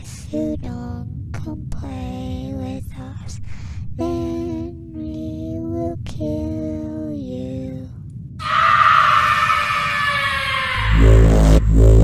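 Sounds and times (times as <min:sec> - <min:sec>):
harsh screeching sound effect: 0:08.4 - 0:12.0
deep bass trailer music beat: 0:10.8 - 0:12.0.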